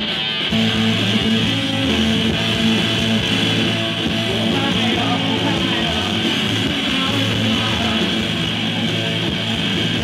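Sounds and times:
bass guitar: 0.0 - 10.0
electric guitars playing chords: 0.0 - 10.0.

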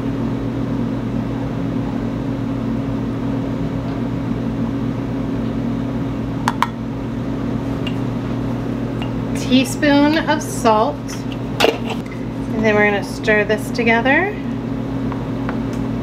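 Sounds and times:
kitchen appliance humming: 0.0 - 16.0.

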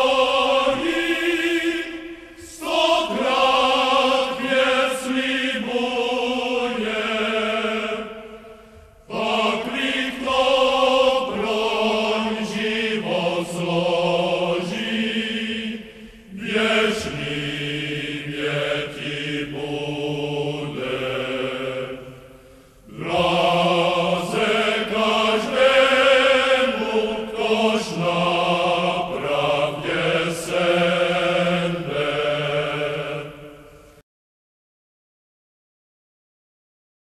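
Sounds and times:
voices chanting: 0.0 - 8.4, 9.1 - 22.2, 22.9 - 33.5.

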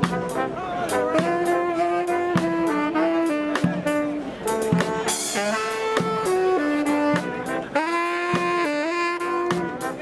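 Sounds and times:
snare drum: 0.0 - 0.4, 3.4 - 4.0, 4.7 - 7.5, 8.2 - 10.0
saxophones and brass melody: 0.0 - 10.0.

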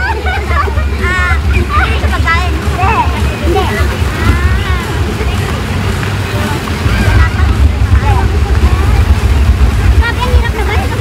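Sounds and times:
people talking faintly: 0.0 - 11.0
wind buffeting microphone: 0.0 - 11.0.

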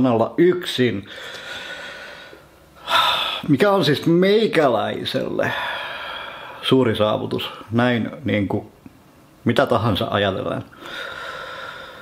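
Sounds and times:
man breathing in: 1.1 - 3.5, 5.4 - 6.6, 10.8 - 12.0.

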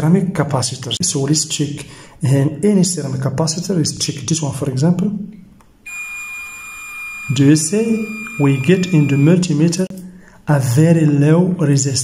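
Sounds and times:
multimeter continuity beep: 5.8 - 9.9.

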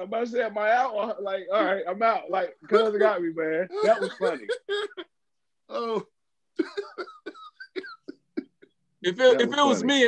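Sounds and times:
men talking: 0.0 - 4.6, 8.3 - 10.0
men laughing: 6.6 - 9.9.

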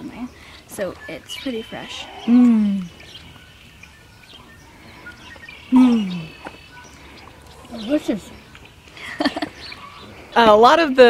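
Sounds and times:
faint bird chirps: 0.0 - 10.6.

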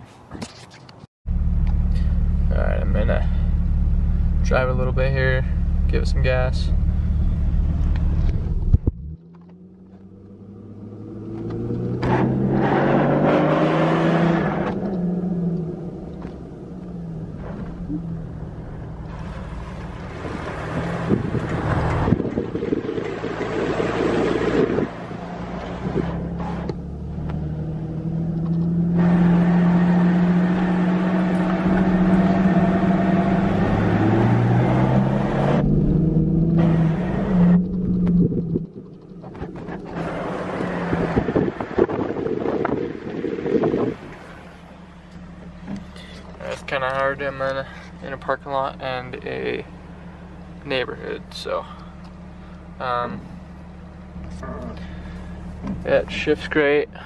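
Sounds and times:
road noise: 0.0 - 57.0
car engine accelerating: 1.3 - 57.0.

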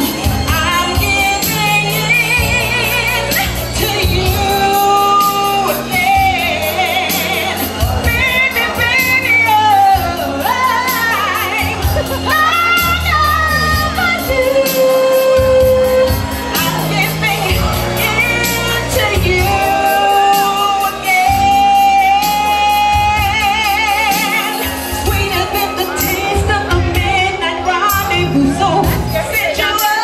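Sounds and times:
musical accompaniment with bass: 0.0 - 30.0
woman singing into microphone: 0.0 - 30.0.

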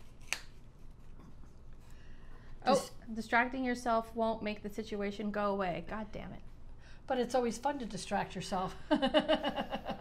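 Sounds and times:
paper card being peeled open: 0.0 - 0.9.

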